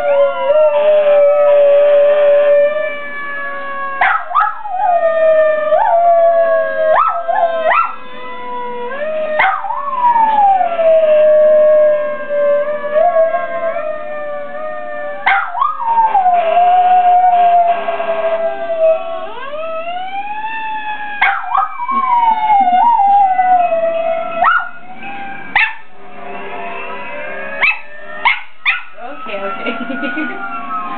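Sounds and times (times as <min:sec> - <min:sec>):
dog howling: 0:00.0 - 0:25.9, 0:27.2 - 0:30.3
dog yelping: 0:15.2 - 0:15.7, 0:25.5 - 0:25.8, 0:27.6 - 0:28.9.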